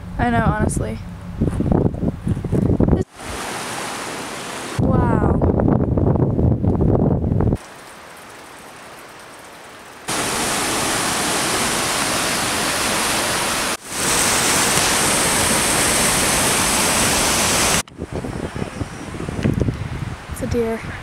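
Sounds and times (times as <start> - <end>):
whitewater rapids rushing: 3.1 - 4.8, 10.1 - 17.8.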